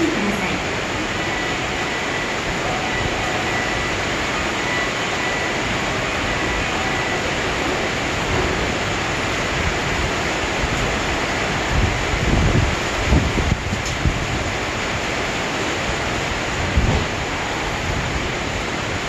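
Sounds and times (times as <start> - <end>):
rain hissing: 0.0 - 19.0.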